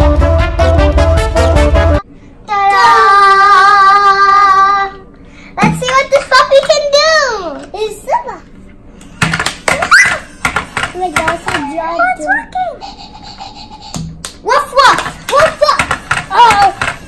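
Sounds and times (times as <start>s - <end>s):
excited children's voices: 2.5s - 5.0s, 5.6s - 8.5s, 9.7s - 10.3s, 11.0s - 13.1s, 14.4s - 16.8s.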